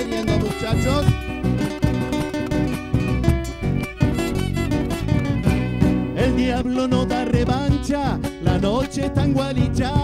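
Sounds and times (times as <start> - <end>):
electric bass: 0.0 - 10.0
nylon-string guitar: 0.0 - 10.0
steady beat: 0.0 - 10.0.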